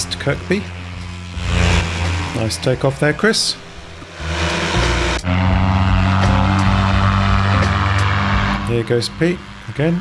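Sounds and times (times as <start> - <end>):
paramotor engine droning: 0.0 - 10.0.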